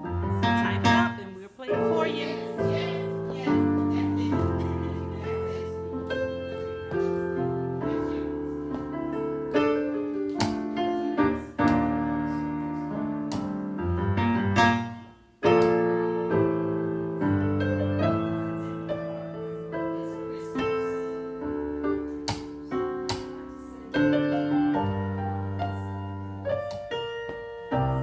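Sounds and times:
piano chords over bass line: 0:00.0 - 0:28.0.

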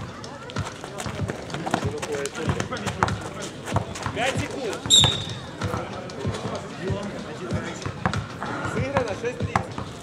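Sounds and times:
running footsteps: 0:00.3 - 0:07.0
basketball bouncing on asphalt: 0:00.4 - 0:10.0.

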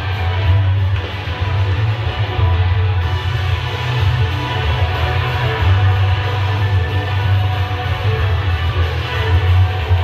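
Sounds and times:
loud music with bass and guitar: 0:00.0 - 0:10.0.

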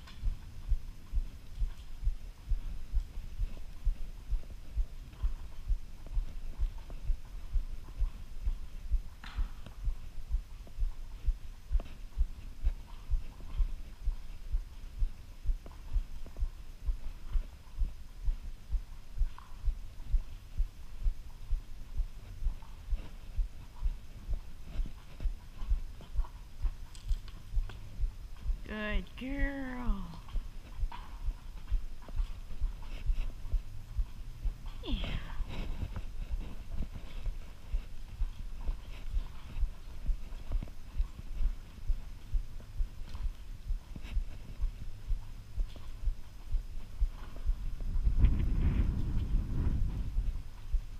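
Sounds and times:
horse hooves on sand: 0:00.0 - 0:50.9.

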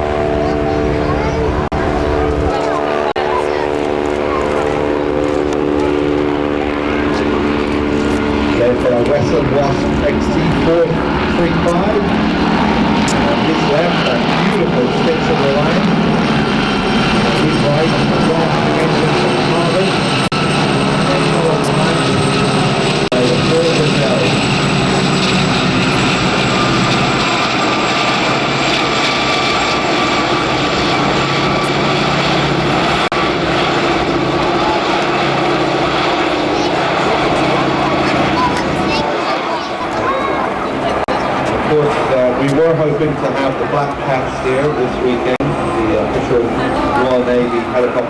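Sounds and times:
aircraft engines and rotors droning: 0:00.0 - 0:48.0
high turbine whine: 0:00.0 - 0:48.0.

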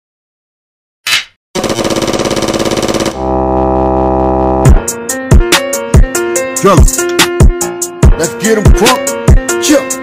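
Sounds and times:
held low chord: 0:03.0 - 0:07.7.

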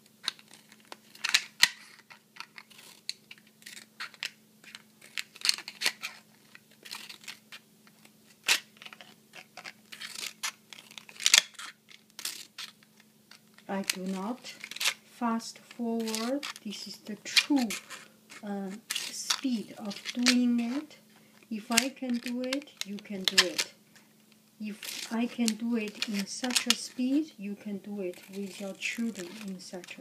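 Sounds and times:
faint steady hum: 0:00.0 - 0:30.0
scissors cutting plastic bottle: 0:16.0 - 0:21.0, 0:21.7 - 0:23.7, 0:24.7 - 0:27.2, 0:28.0 - 0:30.0.

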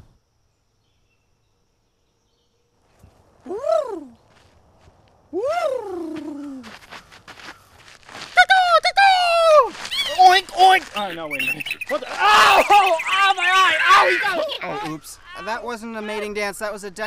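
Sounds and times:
feet scuffing on dirt path: 0:04.2 - 0:05.2, 0:06.1 - 0:08.6, 0:09.4 - 0:12.5.

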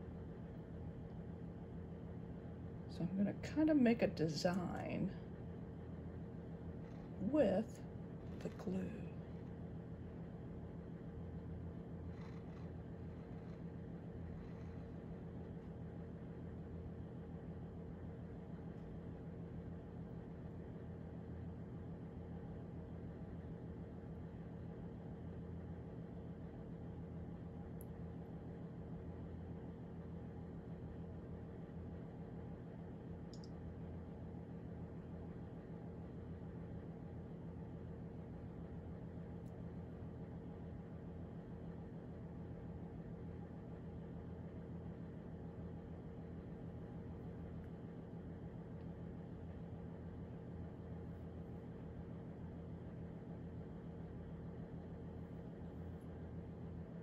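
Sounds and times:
room tone hum: 0:00.0 - 0:57.0.

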